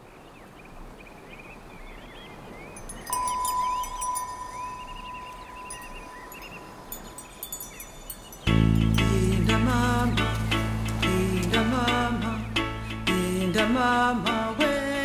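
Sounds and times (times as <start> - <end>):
high tinkling: 2.7 - 9.4
chime ringing note: 3.0 - 8.9.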